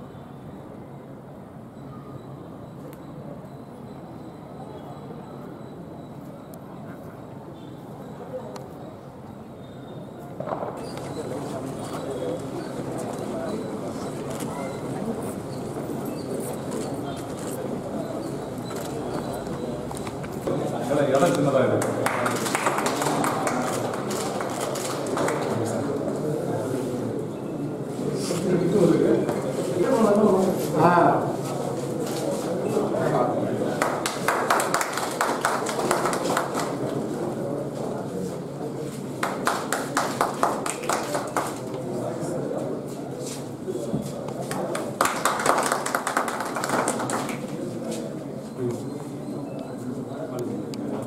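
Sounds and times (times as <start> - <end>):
crowd voices: 0.0 - 51.0
crowd clapping: 21.3 - 25.9, 33.7 - 37.1, 39.1 - 41.9, 44.4 - 47.8.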